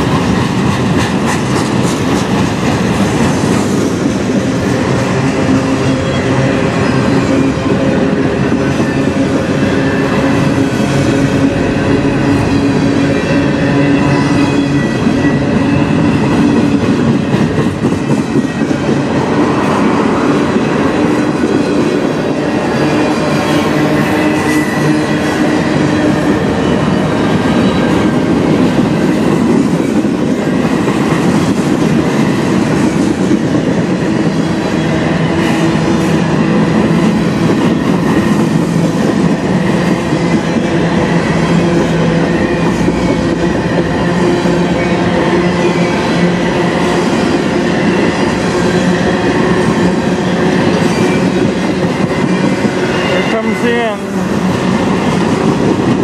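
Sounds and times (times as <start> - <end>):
steel wheels rumbling on rails: 0.0 - 56.0.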